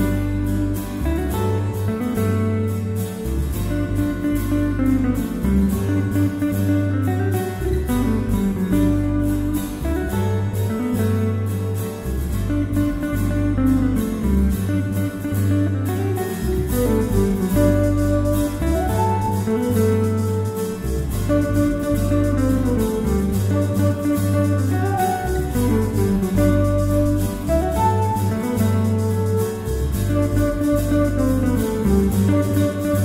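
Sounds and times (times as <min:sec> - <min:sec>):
bass guitar: 0:00.0 - 0:33.0
plucked guitar: 0:00.0 - 0:33.0
sustained melody notes: 0:00.0 - 0:33.0.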